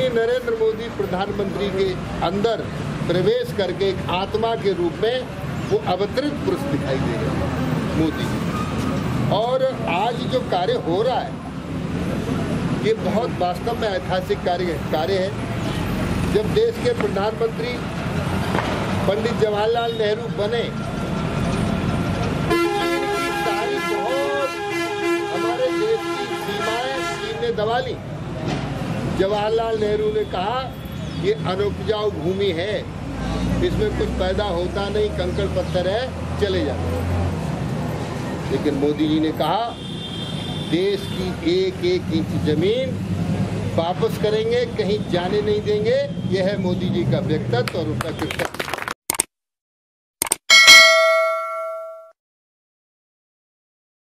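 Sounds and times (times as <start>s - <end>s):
vehicle horn blast: 22.5s - 27.5s
quick clicks: 50.2s - 50.4s
bell chime ringing: 50.5s - 52.2s.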